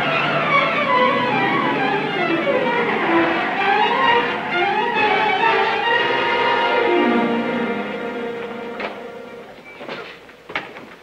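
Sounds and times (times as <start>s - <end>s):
orchestral strings melody: 0.0s - 9.7s.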